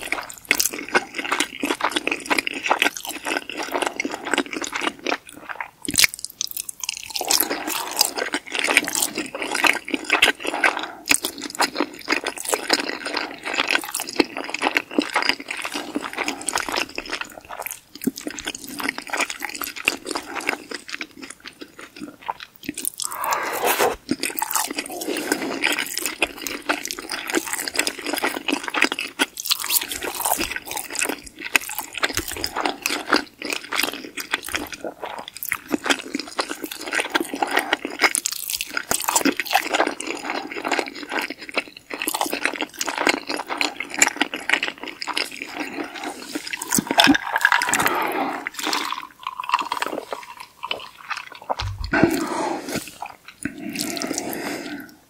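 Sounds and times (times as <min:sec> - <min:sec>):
chewing pasta: 0:00.0 - 0:55.0
wet sticky mouth sounds: 0:21.8 - 0:28.4, 0:44.9 - 0:55.0
small mouth clicks: 0:51.5 - 0:53.6.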